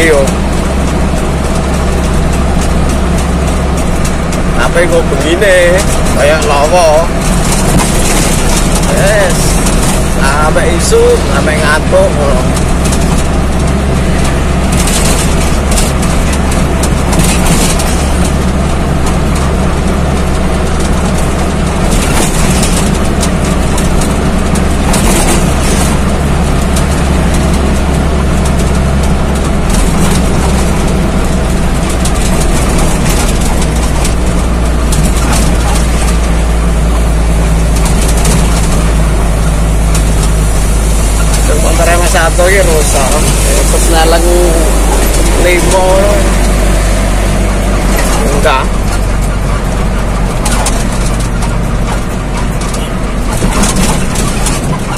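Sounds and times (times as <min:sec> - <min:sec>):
road and wind noise: 0:00.0 - 0:54.9
truck engine running: 0:00.0 - 0:54.9.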